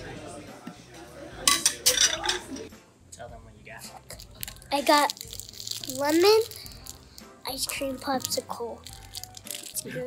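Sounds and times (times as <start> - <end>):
low background chatter: 0.0 - 8.9
tableware clinking on metal pot: 1.5 - 2.7.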